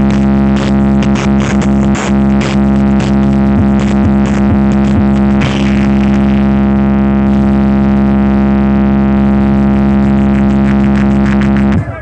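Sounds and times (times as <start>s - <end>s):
loud sustained buzzing tone: 0.0s - 11.8s
quick run of beats: 0.0s - 12.0s.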